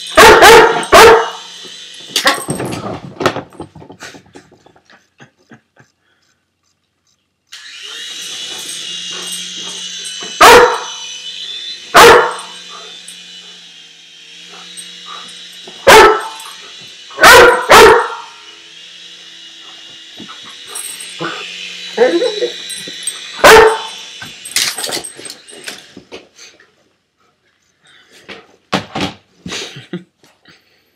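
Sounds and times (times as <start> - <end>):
toy helicopter motor whine: 0.0 - 26.8
puppy barking loudly: 0.2 - 1.4, 10.4 - 11.0, 12.0 - 12.5, 15.8 - 16.5, 17.2 - 18.3, 23.4 - 24.0.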